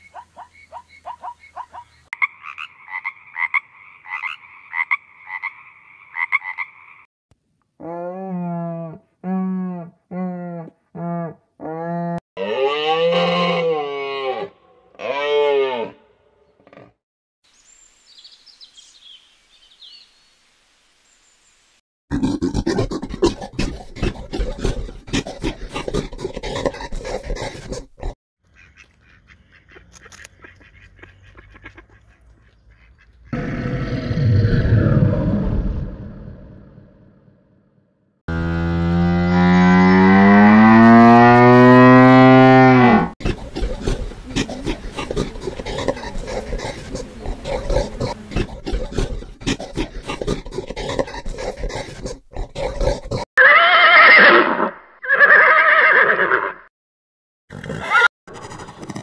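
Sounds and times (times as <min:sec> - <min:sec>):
deep moo-like bellow: 0:07.8 - 0:16.0
animal growling: 0:22.1 - 0:28.2, 0:33.4 - 0:37.5, 0:42.8 - 0:53.3
crackling noise: 0:43.2 - 0:51.5
horse whinnying: 0:53.4 - 0:56.6, 0:57.5 - 0:58.7.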